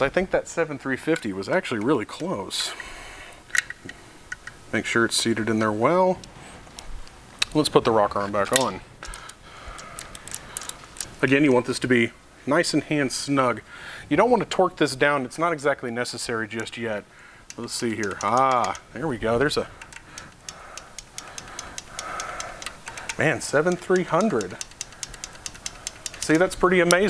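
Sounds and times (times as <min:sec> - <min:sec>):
rapid light ticking: 0:08.6 - 0:11.4, 0:16.5 - 0:27.0
light metal clicks: 0:17.5 - 0:27.0.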